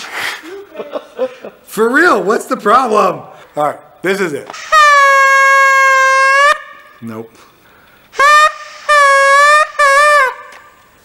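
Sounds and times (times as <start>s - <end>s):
party horn toots: 4.5s - 7.0s, 8.1s - 10.8s.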